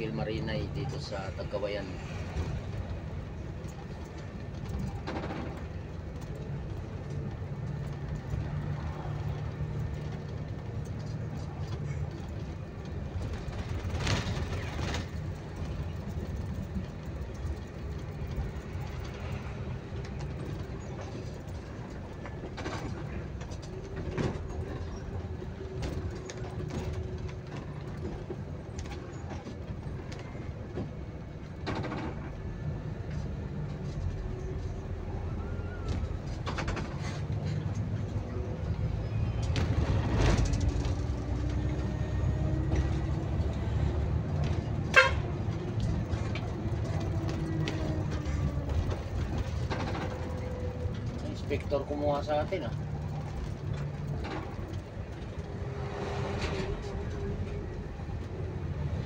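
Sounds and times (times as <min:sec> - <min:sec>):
bus engine rumble: 0:00.0 - 0:59.0.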